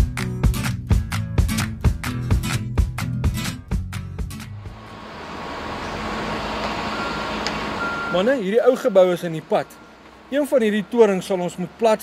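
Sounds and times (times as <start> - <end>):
rumble of engines: 4.2 - 12.0
traffic: 4.3 - 12.0.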